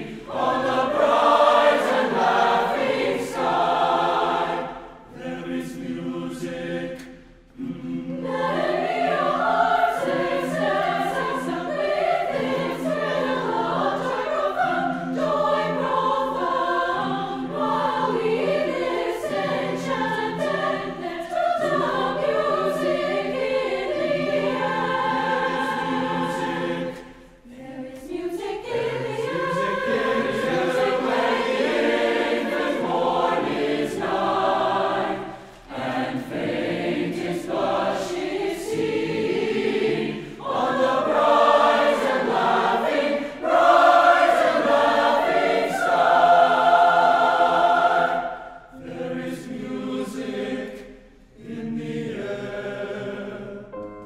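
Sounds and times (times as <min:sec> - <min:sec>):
mixed choir singing: 0:00.0 - 0:53.8.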